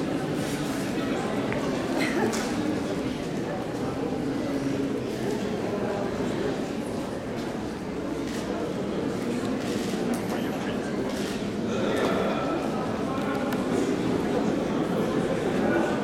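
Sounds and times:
crowd chatter in a hall: 0:00.0 - 0:16.0.

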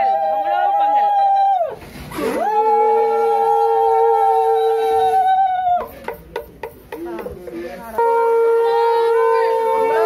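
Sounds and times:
conch shells blown: 0:07.9 - 0:10.0.

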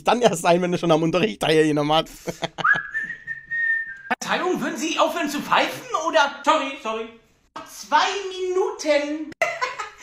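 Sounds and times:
person whistling one note: 0:02.6 - 0:04.2.

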